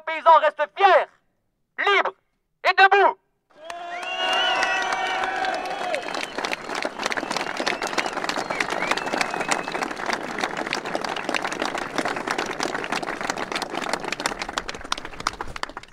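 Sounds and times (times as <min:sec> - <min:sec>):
crowd applauding: 0:03.5 - 0:15.9.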